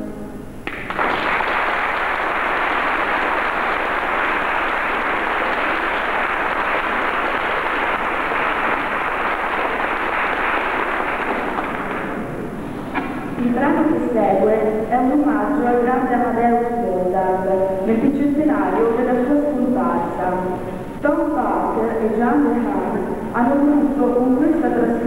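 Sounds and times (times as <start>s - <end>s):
band held chord: 0.0s - 0.7s
audience applauding: 0.6s - 13.2s.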